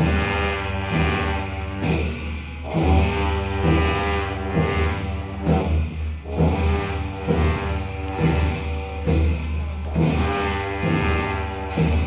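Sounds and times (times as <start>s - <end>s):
droning wind instrument tones: 0.0s - 12.0s
slow deep drum beats: 0.0s - 12.0s.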